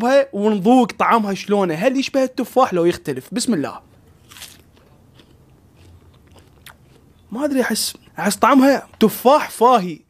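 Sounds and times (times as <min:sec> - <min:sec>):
person chewing crunchy fruit: 0:03.8 - 0:07.3.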